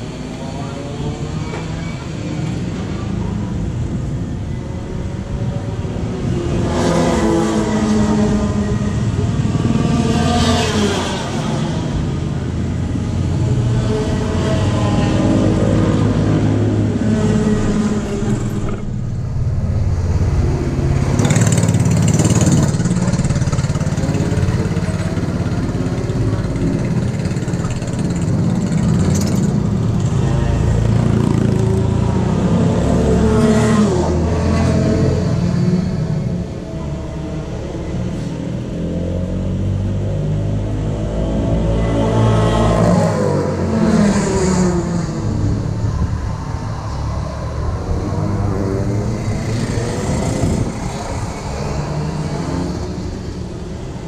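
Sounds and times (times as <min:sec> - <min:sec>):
engine revving: 0:06.5 - 0:53.4.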